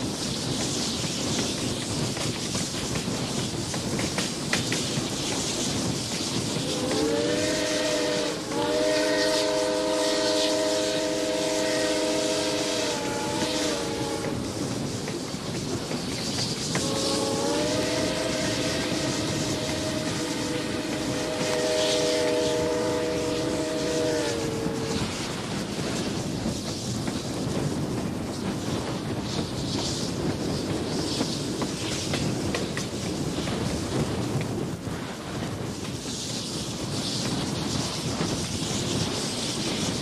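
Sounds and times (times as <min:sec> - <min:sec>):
rushing noise of running train: 0:00.0 - 0:40.0
steam locomotive chime whistle: 0:06.6 - 0:14.6, 0:16.8 - 0:25.2.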